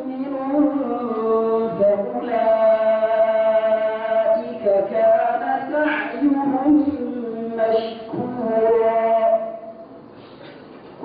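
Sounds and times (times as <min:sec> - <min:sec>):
man reciting melodically: 0:00.0 - 0:09.9.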